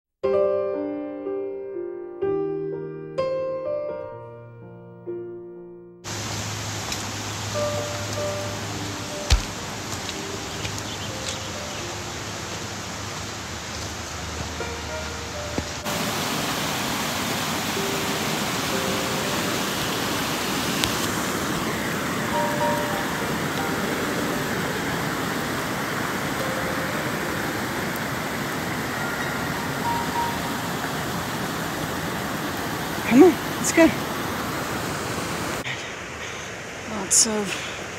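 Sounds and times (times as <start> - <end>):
soft piano music: 0.2 - 33.9
running water rushing: 6.1 - 37.9.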